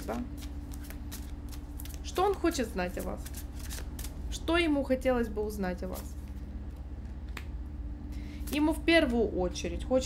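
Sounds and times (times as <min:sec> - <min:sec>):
steady low hum: 0:00.0 - 0:10.0
cards being shuffled: 0:00.1 - 0:04.4.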